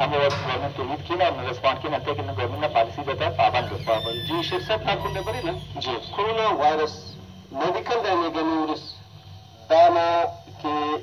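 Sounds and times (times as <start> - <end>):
person talking: 2.4 - 8.8.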